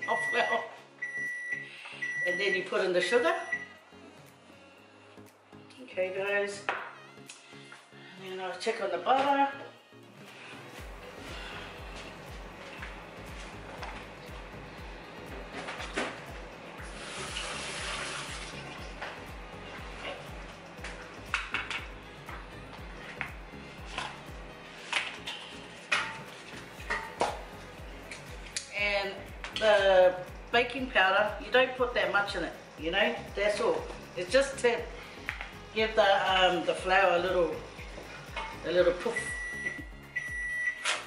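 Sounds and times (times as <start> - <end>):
background music with bass beat: 9.8 - 31.5, 32.4 - 40.7.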